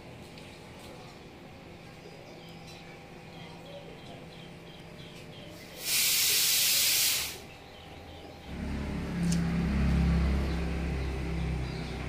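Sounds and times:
loud high-pitched hiss: 5.8 - 7.5
vehicle engine running: 8.4 - 12.0.

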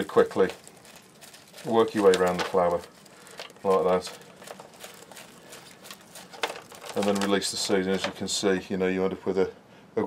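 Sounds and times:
soft dry rustle: 0.0 - 8.0
seeds clicking into plastic tray: 1.6 - 7.4.

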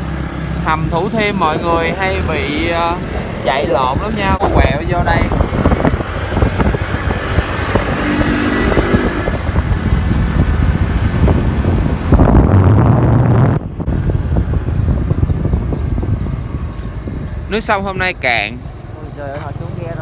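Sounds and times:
road noise: 0.0 - 20.0
wind rushing over microphone: 0.0 - 20.0.

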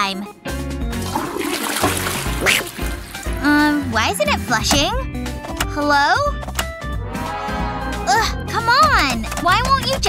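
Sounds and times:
toilet flushing: 1.0 - 3.5.

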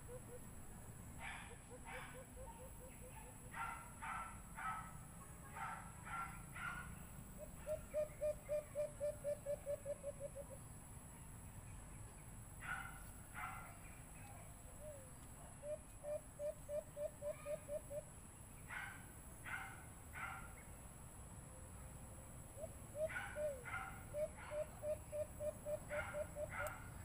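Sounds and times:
dove low hooting notes: 6.3 - 10.6, 14.7 - 18.1, 22.5 - 27.0
higher bird calls: 6.6 - 10.6, 14.8 - 18.1.

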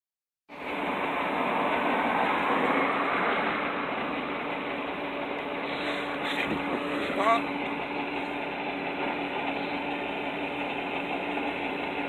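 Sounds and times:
diesel truck engine droning: 0.5 - 12.0.

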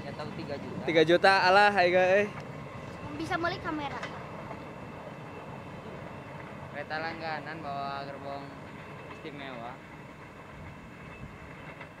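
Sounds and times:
train wheels rumbling on track: 0.0 - 12.0.

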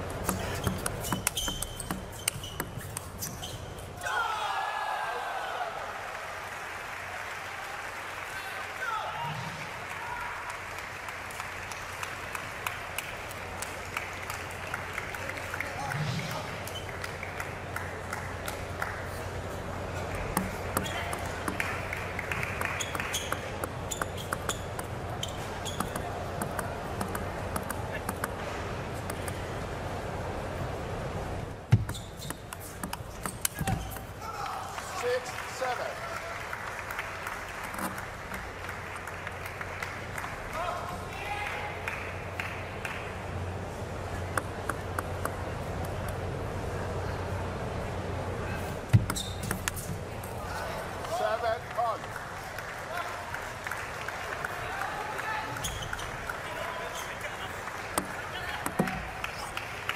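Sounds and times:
table tennis ball clicking: 0.2 - 3.4, 22.4 - 25.0, 25.6 - 28.4, 31.8 - 34.1.

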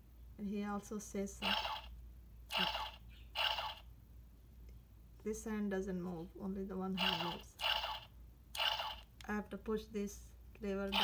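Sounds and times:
toy speaker voice clip: 1.4 - 1.9, 2.5 - 3.8, 7.0 - 8.0.

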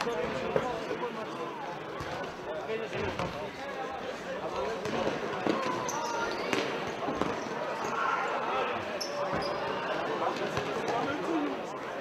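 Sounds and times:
voices of players and spectators: 0.0 - 12.0
ball thuds echoing in hall: 6.5 - 7.4.

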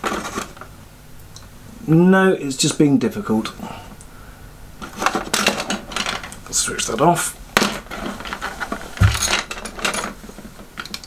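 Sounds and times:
quiet handling of objects: 7.9 - 10.5.

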